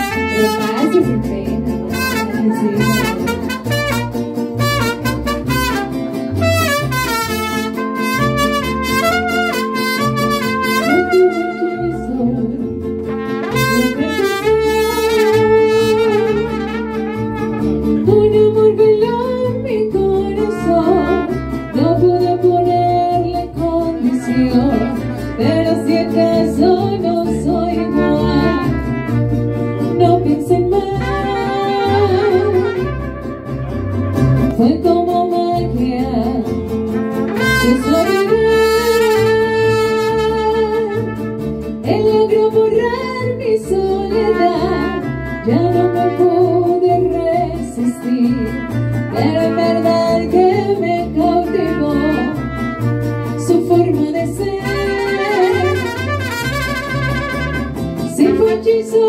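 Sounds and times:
trumpets playing melody: 0.0s - 1.2s, 1.8s - 12.3s, 13.1s - 18.0s, 20.4s - 22.0s, 28.0s - 30.0s, 30.9s - 34.5s, 37.2s - 41.4s, 44.2s - 46.5s, 51.5s - 53.5s, 54.6s - 58.8s
strummed guitar: 0.0s - 59.0s.

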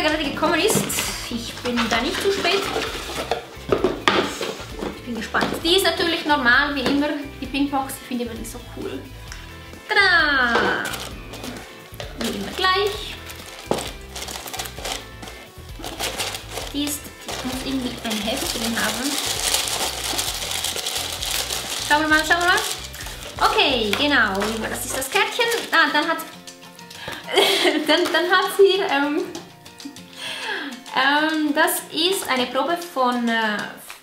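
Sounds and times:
paper and cardboard rustling: 0.4s - 5.3s, 10.5s - 26.0s
packaging clicks and knocks: 10.6s - 12.6s, 13.2s - 25.8s.

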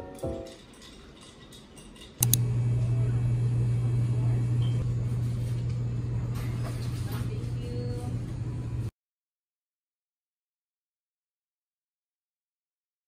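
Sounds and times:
quick clicks: 2.2s - 2.5s
loud low hum: 2.2s - 8.9s.

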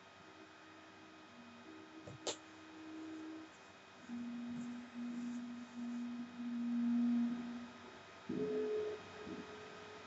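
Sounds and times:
film soundtrack hiss: 0.0s - 10.0s
pure held tones: 0.2s - 10.0s.

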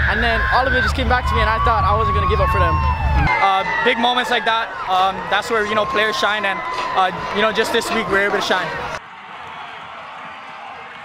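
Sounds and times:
crowd cheering and clapping: 0.0s - 11.0s.

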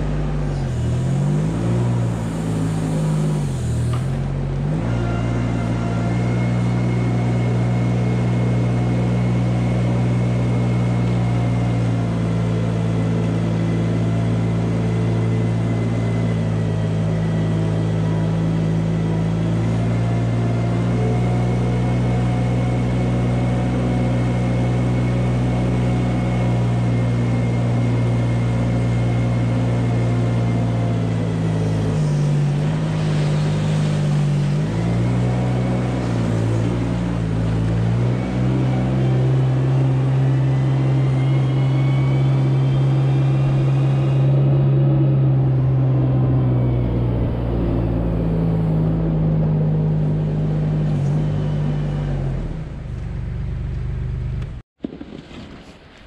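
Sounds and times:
loader engine running: 0.0s - 55.0s.

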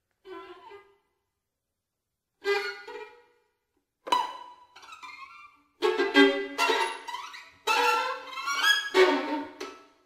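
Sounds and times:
solo violin playing: 4.2s - 9.9s.

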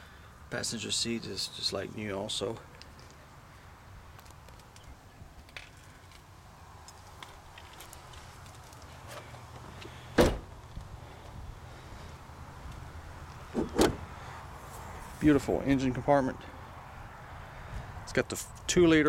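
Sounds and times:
car door shutting: 10.2s - 10.6s, 13.5s - 14.1s.

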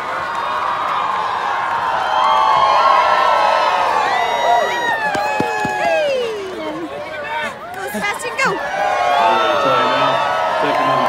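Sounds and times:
crowd yelling and cheering: 0.0s - 11.0s.

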